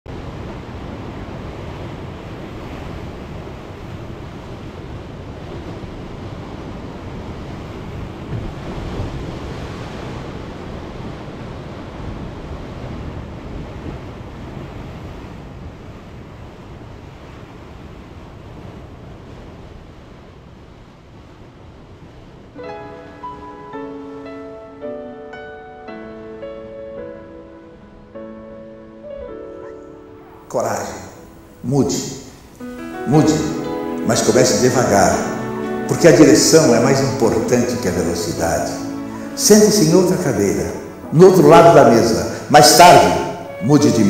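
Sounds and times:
ocean surf washing onto beach: 0:00.1 - 0:44.0.

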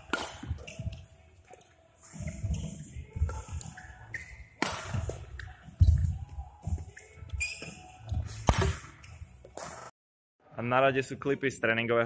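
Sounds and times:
racket striking shuttlecock: 0:00.0 - 0:00.8, 0:04.6 - 0:05.4, 0:08.4 - 0:09.0
footsteps thudding and scuffing: 0:04.4 - 0:09.9.

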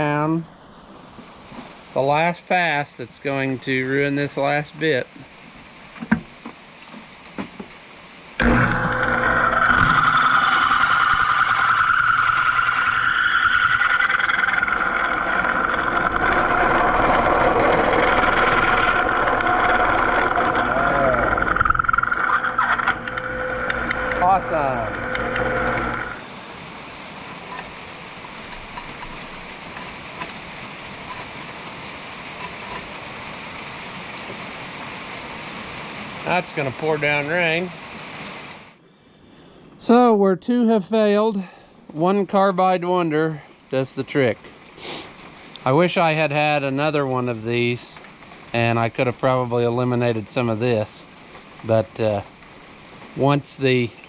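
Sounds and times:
steady hiss: 0:00.6 - 0:08.4, 0:26.2 - 0:41.2, 0:42.0 - 0:54.0
drill bit grinding squeal: 0:08.4 - 0:26.2
drill press motor hum: 0:08.4 - 0:26.2.

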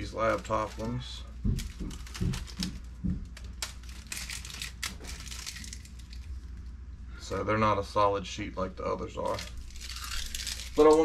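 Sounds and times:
plastic keyboard parts crinkling: 0:00.0 - 0:06.6, 0:09.2 - 0:11.0.

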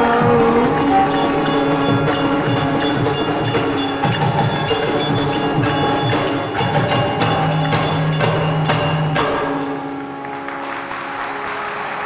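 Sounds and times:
hand-clapping: 0:10.2 - 0:12.0.

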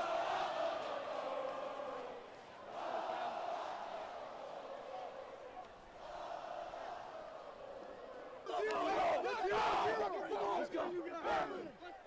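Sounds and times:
crowd murmur: 0:00.0 - 0:12.0
team yelling together: 0:08.4 - 0:11.8.

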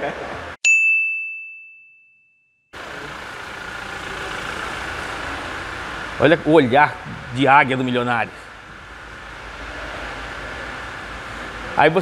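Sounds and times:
bell-like ding: 0:00.7 - 0:02.6.

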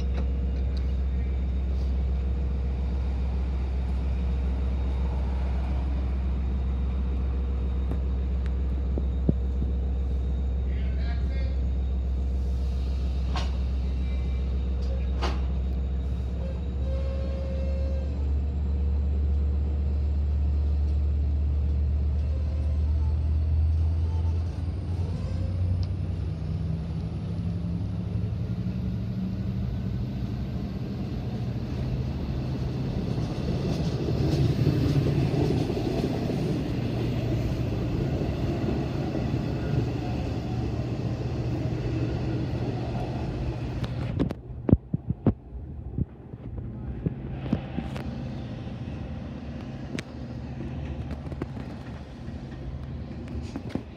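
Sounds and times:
diesel train engine hum: 0:00.0 - 0:53.9
train rumble: 0:00.0 - 0:53.9.

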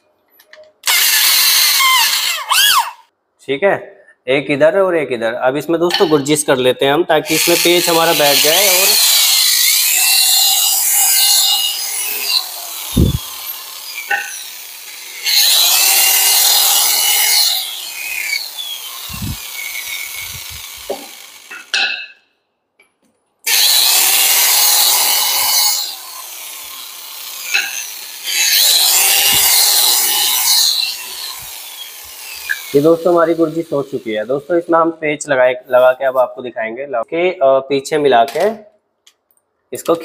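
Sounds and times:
electric drill grinding into wood: 0:00.8 - 0:03.0, 0:07.3 - 0:21.7, 0:23.5 - 0:34.3.

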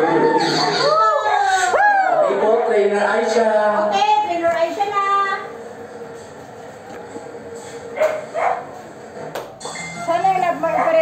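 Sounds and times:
dog barking: 0:08.0 - 0:08.8.

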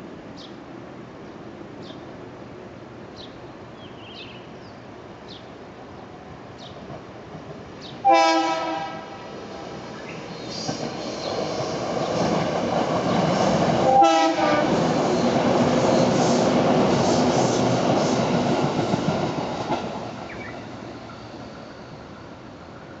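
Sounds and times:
electric train clattering past: 0:06.6 - 0:23.0
train horn blast: 0:08.0 - 0:09.2, 0:13.8 - 0:14.8.

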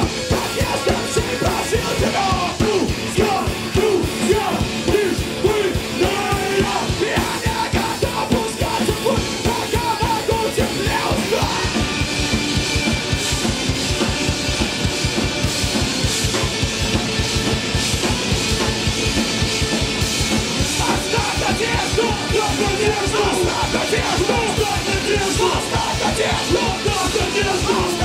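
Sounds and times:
shouted vocals: 0:00.0 - 0:11.9, 0:20.8 - 0:28.0
rock band playing live: 0:00.0 - 0:28.0.

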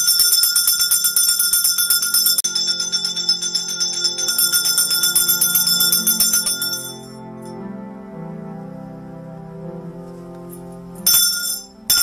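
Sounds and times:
altar bells ringing rapidly: 0:00.0 - 0:07.5, 0:11.0 - 0:12.0
low sustained musical notes: 0:02.4 - 0:12.0.

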